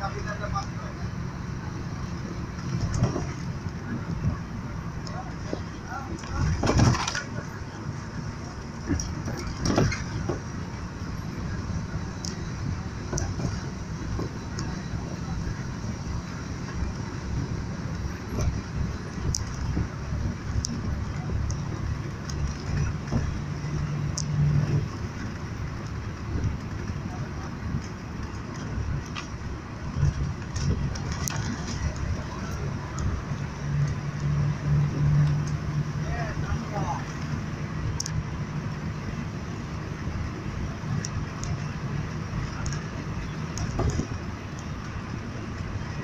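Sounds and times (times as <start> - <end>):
car engine low hum: 0.0 - 46.0
tyre rumble inside car: 2.4 - 46.0.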